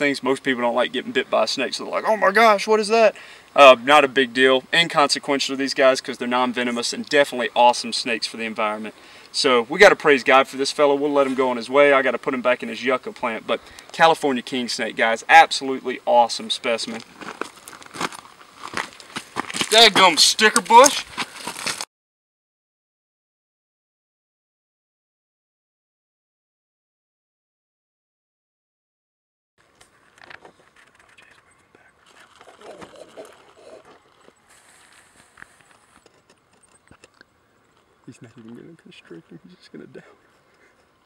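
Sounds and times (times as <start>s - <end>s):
rustling and crackling of dry scrub: 16.6s - 21.9s, 29.6s - 39.2s
quiet murmur of a voice: 37.9s - 41.0s.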